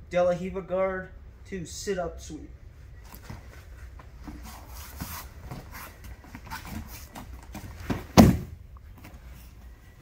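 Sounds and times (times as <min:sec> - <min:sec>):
thumps and scuffs on mat: 0:03.1 - 0:09.3.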